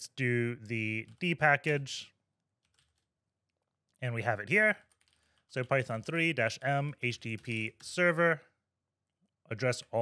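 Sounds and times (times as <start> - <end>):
faint keyboard keystrokes: 2.6 - 3.1, 4.8 - 5.6.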